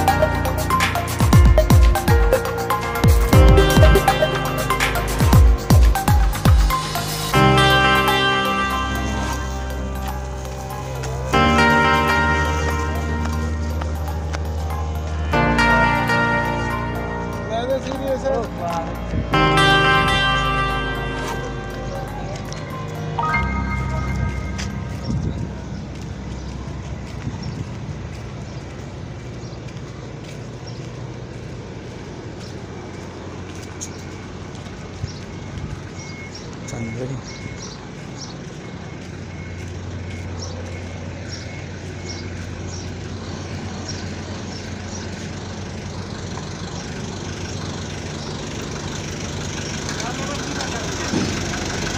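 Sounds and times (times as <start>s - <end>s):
background music with sustained chords: 0.0s - 27.5s
truck engines rumbling: 0.0s - 51.9s.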